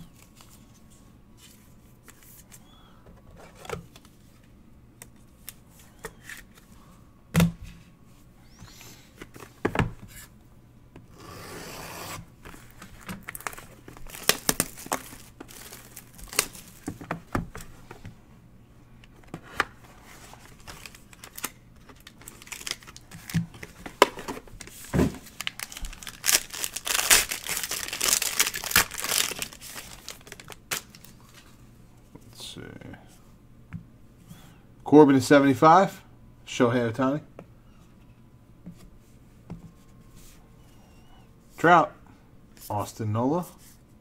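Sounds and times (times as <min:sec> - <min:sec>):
foil and plastic crinkling: 0:12.4 - 0:17.0, 0:20.2 - 0:31.4.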